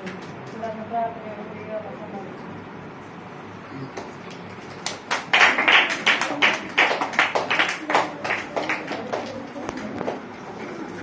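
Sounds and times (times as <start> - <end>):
hands clapping: 3.9 - 10.3.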